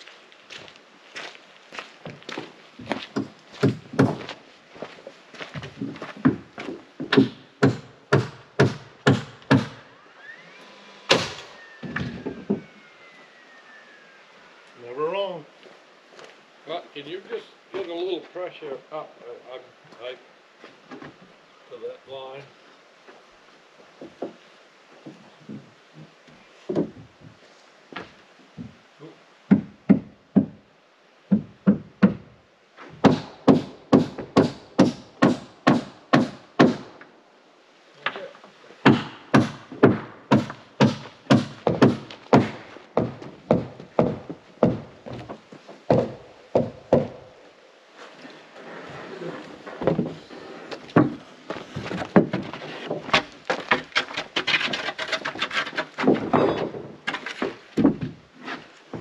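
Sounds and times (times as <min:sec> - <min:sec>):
hammer driving nails into wood: 0:07.1 - 0:09.8, 0:33.0 - 0:36.9, 0:38.8 - 0:44.8
rough noise: 0:09.5 - 0:15.4, 0:47.9 - 0:59.0.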